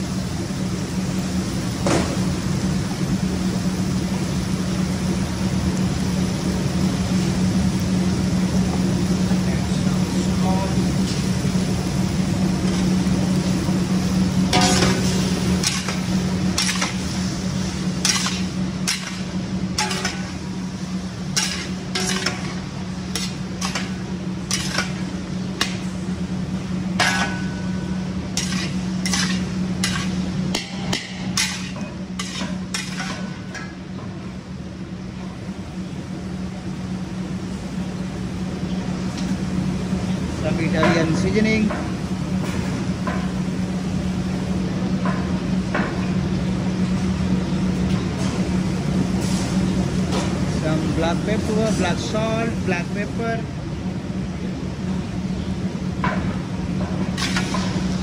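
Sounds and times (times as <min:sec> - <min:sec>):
steady low hum: 0:00.0 - 0:58.0
light sizzling: 0:00.2 - 0:33.8
metal spatula scraping wok: 0:21.4 - 0:22.6, 0:24.5 - 0:25.0, 0:28.4 - 0:30.2.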